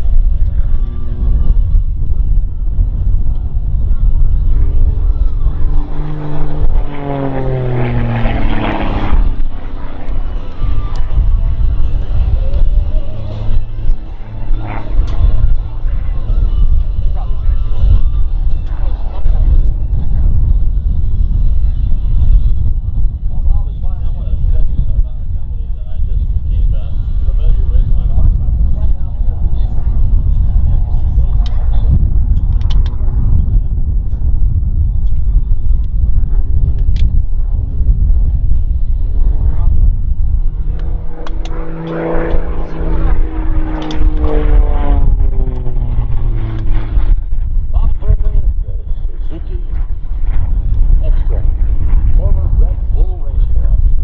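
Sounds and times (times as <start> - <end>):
plane engine and propeller: 0.0 - 54.0
wind buffeting microphone: 0.0 - 54.0.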